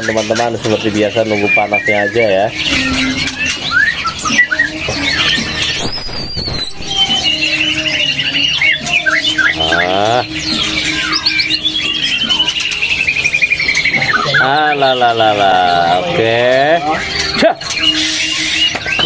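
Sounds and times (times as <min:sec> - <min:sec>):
songbirds singing: 0:00.0 - 0:19.0.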